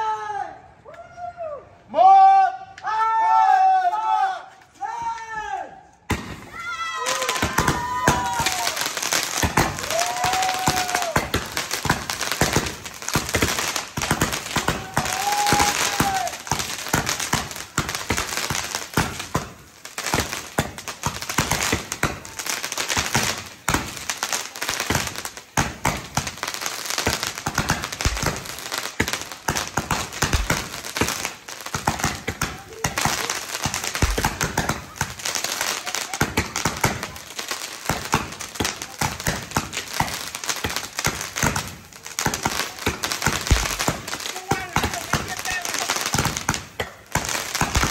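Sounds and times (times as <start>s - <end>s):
fireworks crackling and popping: 6.0s - 47.9s.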